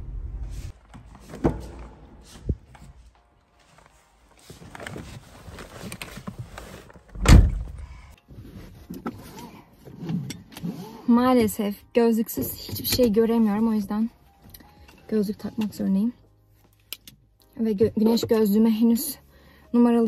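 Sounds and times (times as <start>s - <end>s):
rustling of person climbing in: 0.4s - 10.5s
car door shutting thump: 7.2s - 7.8s.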